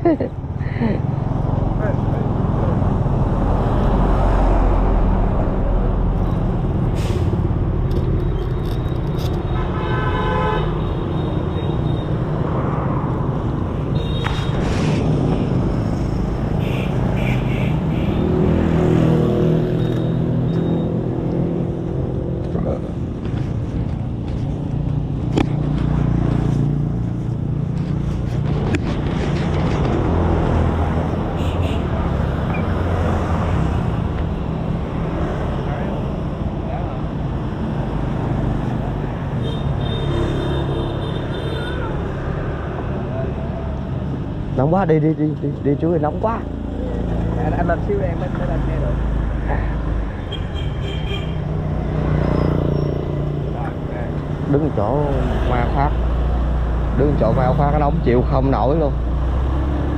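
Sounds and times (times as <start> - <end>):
vehicles passing on road: 0.0 - 59.9.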